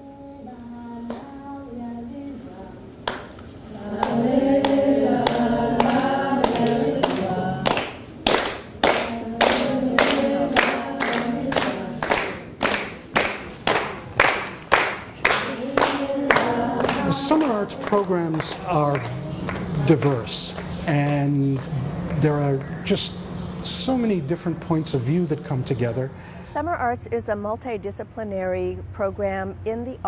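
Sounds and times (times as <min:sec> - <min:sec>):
group of people singing: 0:00.0 - 0:08.0, 0:08.8 - 0:12.9, 0:15.2 - 0:21.2
hand claps keeping the beat: 0:03.0 - 0:03.4, 0:04.0 - 0:20.8.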